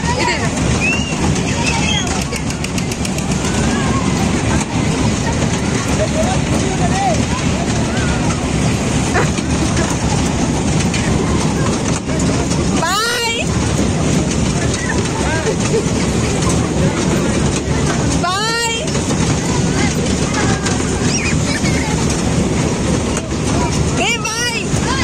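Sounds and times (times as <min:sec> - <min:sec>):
carousel cars rumbling on track: 0:00.0 - 0:25.0
crowd chatter: 0:00.0 - 0:25.0.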